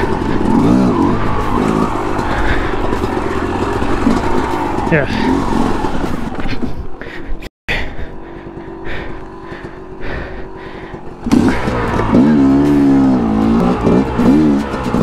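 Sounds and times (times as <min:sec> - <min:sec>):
dirt bike engine revving: 0:00.0 - 0:06.9, 0:07.9 - 0:15.0.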